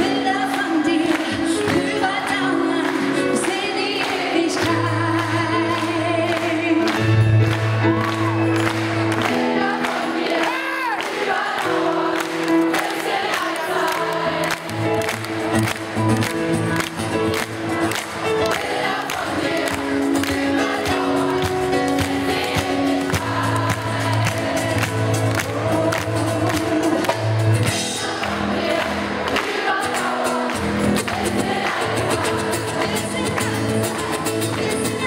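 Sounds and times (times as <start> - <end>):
live pop band playing: 0.0 - 35.0
voices singing: 9.2 - 15.6, 16.6 - 35.0.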